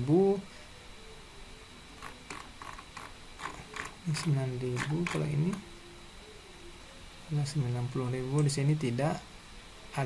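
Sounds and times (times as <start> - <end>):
mouse scroll wheel ticking: 2.0 - 4.0.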